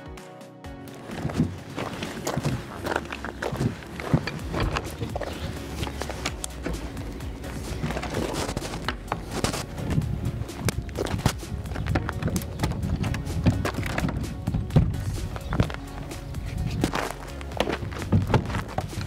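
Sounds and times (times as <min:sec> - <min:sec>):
background music: 0:00.0 - 0:19.0
footsteps on gravel: 0:00.9 - 0:19.0.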